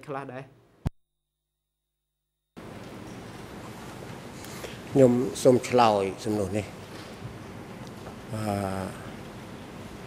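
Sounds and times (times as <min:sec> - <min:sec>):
man saying uhh: 0:08.3 - 0:09.1.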